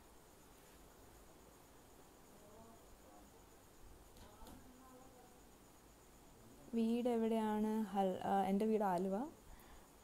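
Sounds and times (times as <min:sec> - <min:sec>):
faint pulsing high-pitched tone: 0:00.0 - 0:10.0.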